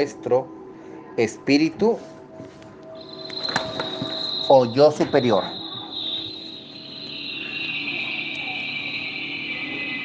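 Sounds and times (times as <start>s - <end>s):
ambient music sustained high tones: 0.0s - 10.0s.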